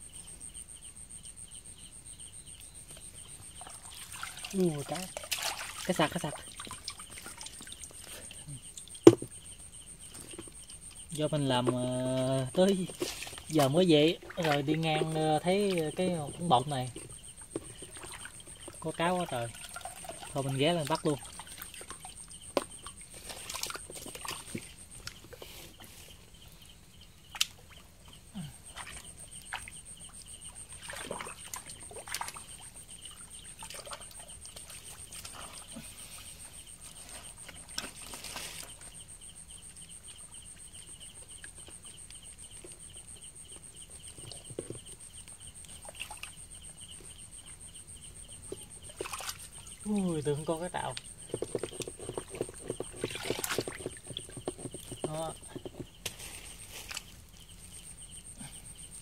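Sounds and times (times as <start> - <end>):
night insects chirring: 0.0 - 59.0
hands splashing in muddy water: 3.6 - 7.8.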